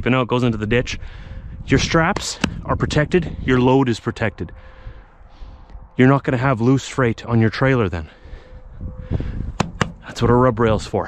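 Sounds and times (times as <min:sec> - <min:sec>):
low rumble of movement: 0:00.6 - 0:11.0
sharp clicks: 0:09.6 - 0:10.1
soft thuds: 0:09.6 - 0:10.1.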